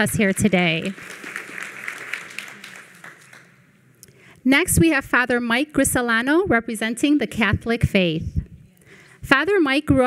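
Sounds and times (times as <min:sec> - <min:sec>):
audience applause: 0:00.9 - 0:03.6.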